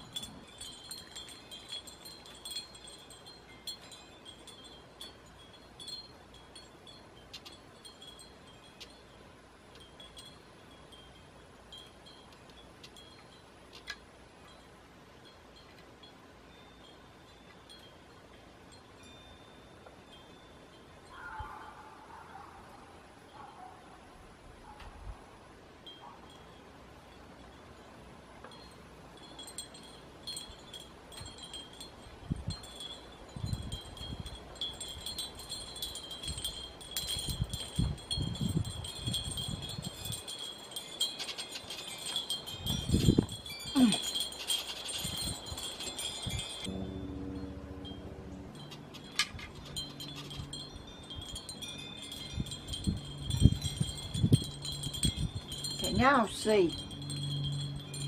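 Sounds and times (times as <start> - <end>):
glass wind chimes tinkling: 0.0 - 23.5, 25.6 - 58.0.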